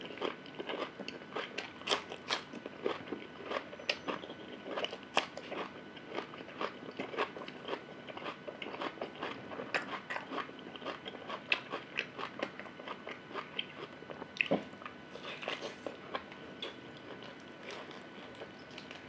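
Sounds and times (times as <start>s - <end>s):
chewing crunchy cucumber: 0.0s - 19.0s.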